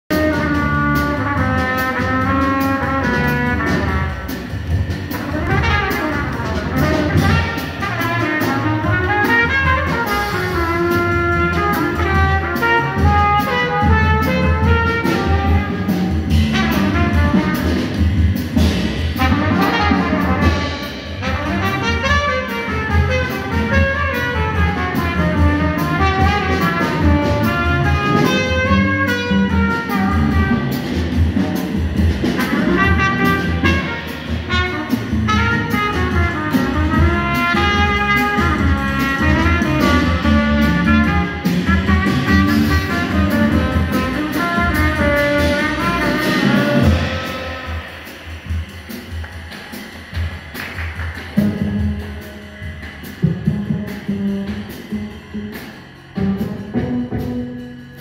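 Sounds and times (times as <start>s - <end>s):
upright double bass: 0.1s - 48.0s, 50.1s - 58.0s
trumpet melody: 0.1s - 48.9s, 51.3s - 58.0s
drum kit: 0.1s - 58.0s.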